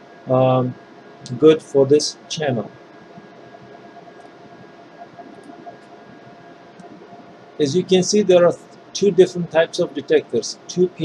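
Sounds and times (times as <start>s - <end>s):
faint constant tones: 0.0s - 11.0s
low background hum and hiss: 0.0s - 11.0s.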